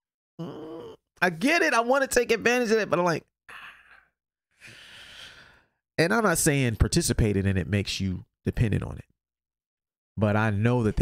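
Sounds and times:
man's breathy exhale: 0:03.5 - 0:05.8.

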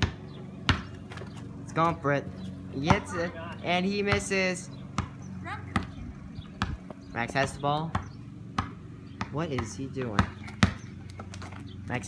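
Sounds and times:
basketball dribbling on concrete: 0:00.0 - 0:12.0.

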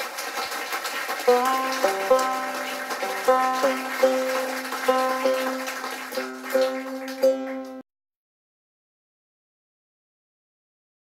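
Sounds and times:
banjo strings plucked: 0:01.3 - 0:07.8.

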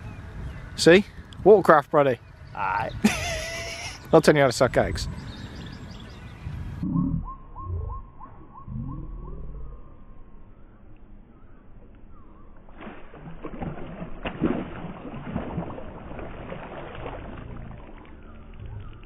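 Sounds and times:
low rumbles: 0:04.7 - 0:19.0
fish splashing at surface: 0:12.7 - 0:18.2.

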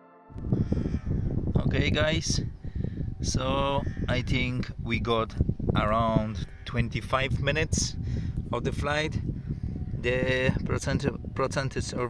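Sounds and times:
loud low rumbling: 0:00.3 - 0:11.4.

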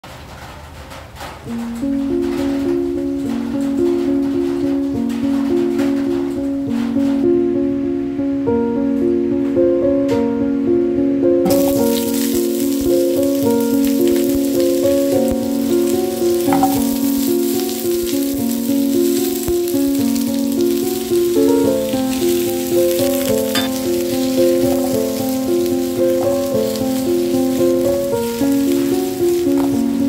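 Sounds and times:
background music: 0:01.5 - 0:30.0
vegetables sizzling in hot oil: 0:11.5 - 0:30.0.

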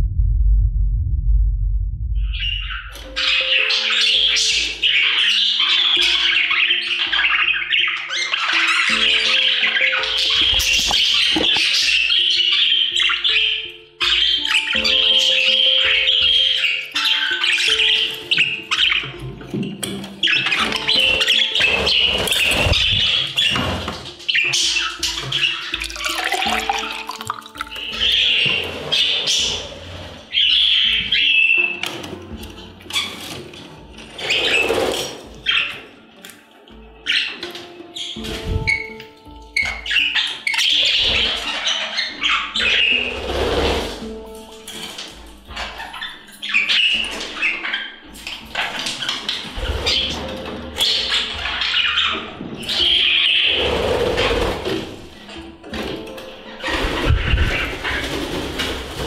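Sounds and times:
budgies chattering and squawking: 0:02.3 - 0:59.0
background music with steady beat: 0:02.6 - 0:59.0.

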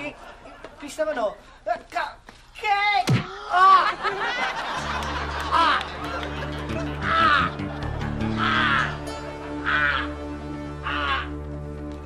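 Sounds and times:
background music: 0:04.1 - 0:12.0
voices shouting in unison: 0:06.8 - 0:11.4.

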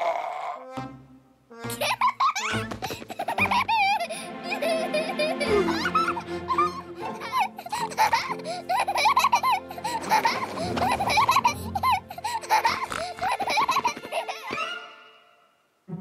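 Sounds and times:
background music: 0:00.0 - 0:16.0
high-pitched cartoon voice giggling: 0:01.6 - 0:14.8.

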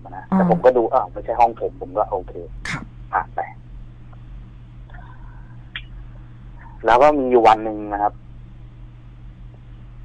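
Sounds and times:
man speaking: 0:00.0 - 0:02.5, 0:03.2 - 0:03.6, 0:06.6 - 0:08.1
low electrical hum: 0:00.0 - 0:10.0.

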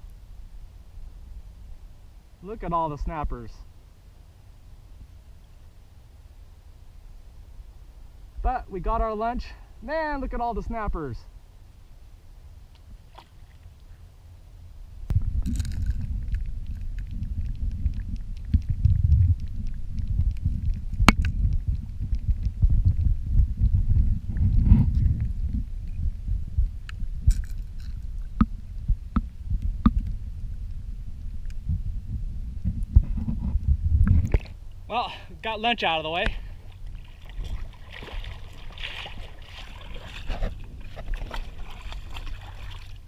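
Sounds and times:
muffled underwater water rumble: 0:13.8 - 0:35.2, 0:35.9 - 0:43.0
sharp underwater clicks: 0:15.1 - 0:23.1, 0:26.8 - 0:30.2.

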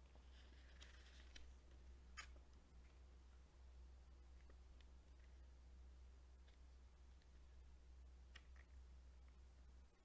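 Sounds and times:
steady low hum: 0:00.0 - 0:10.0
booklet page turning: 0:00.2 - 0:03.0.

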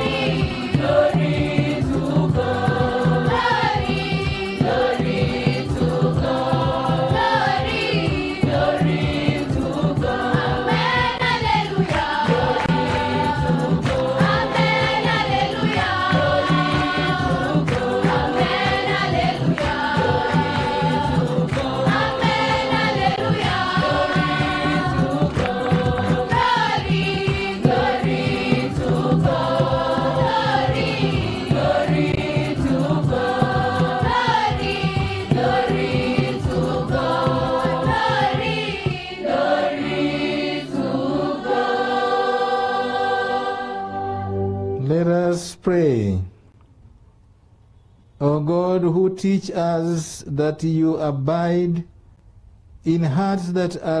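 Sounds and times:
steady beat: 0:00.0 - 0:41.7
choir of girls singing: 0:00.0 - 0:44.6.

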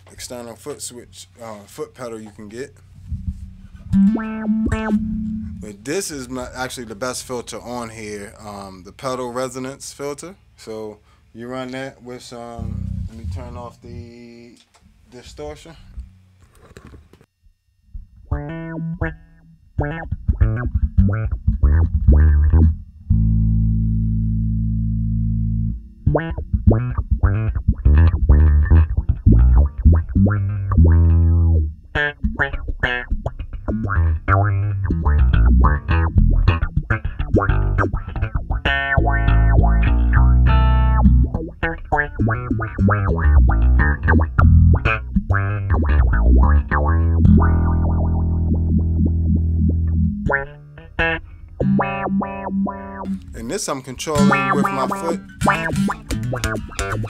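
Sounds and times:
filtered funky electric bass: 0:02.4 - 0:07.5, 0:12.5 - 0:14.4, 0:17.9 - 0:53.5, 0:54.1 - 0:57.0.

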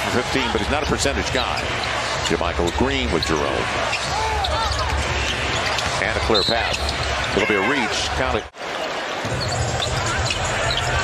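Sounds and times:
crowd din: 0:00.0 - 0:11.0
sneaker squeaks: 0:01.6 - 0:07.6, 0:09.2 - 0:11.0.

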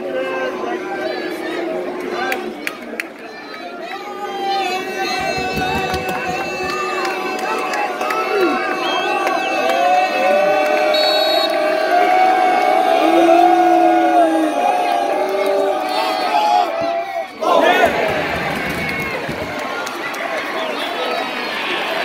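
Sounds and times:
crowd cheering roar: 0:00.0 - 0:22.0
football crowd chanting: 0:14.6 - 0:21.1.

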